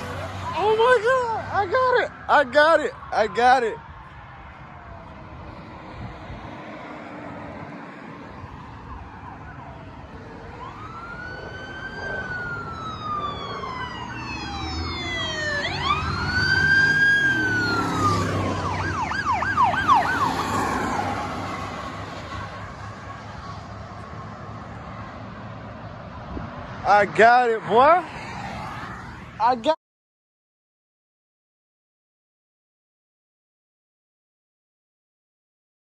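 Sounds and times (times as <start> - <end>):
police siren yelp: 0.0 - 5.7, 6.8 - 23.7
police siren wailing: 0.0 - 24.8
police car engine and tyres: 0.0 - 29.8.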